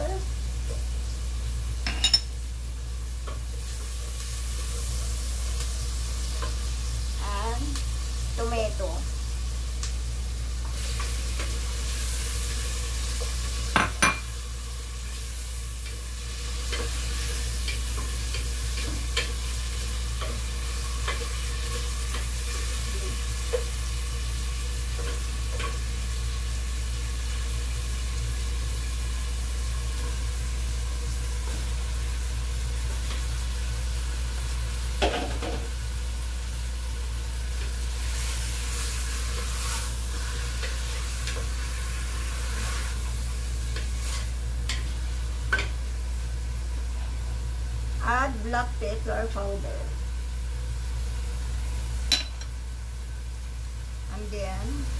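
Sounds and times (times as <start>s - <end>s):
onion sizzling in oil: 0.0s - 54.9s.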